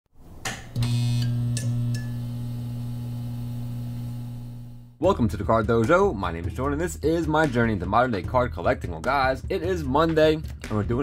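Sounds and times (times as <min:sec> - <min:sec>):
steady electrical hum: 0:00.8 - 0:05.0.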